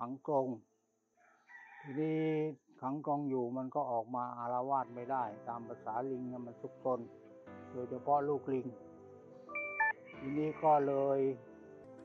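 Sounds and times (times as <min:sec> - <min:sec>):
rooster crowing: 0:01.2 - 0:02.0
person speaking: 0:02.0 - 0:07.2, 0:07.8 - 0:08.8, 0:10.1 - 0:11.5.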